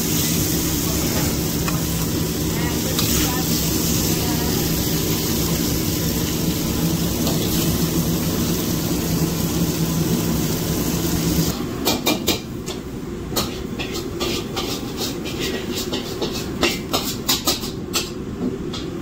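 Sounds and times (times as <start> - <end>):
kitchen hum with low tone: 0.0 - 19.0.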